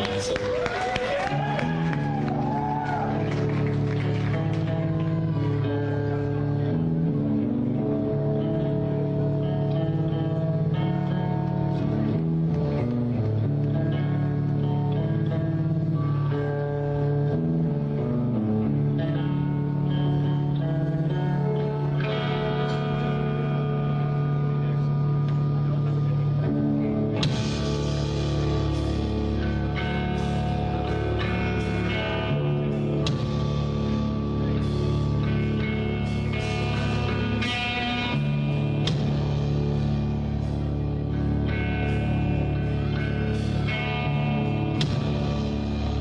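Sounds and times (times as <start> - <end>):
electric guitar and bass chords: 0.0 - 46.0.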